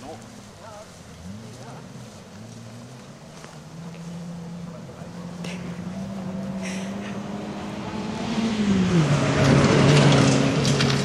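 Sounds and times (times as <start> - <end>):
rally car engine: 0.0 - 11.0.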